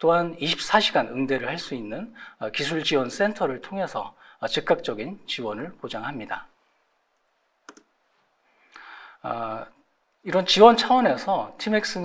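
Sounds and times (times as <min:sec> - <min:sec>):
soft intake of breath: 0:02.2 - 0:02.4, 0:04.2 - 0:04.4, 0:08.5 - 0:09.2.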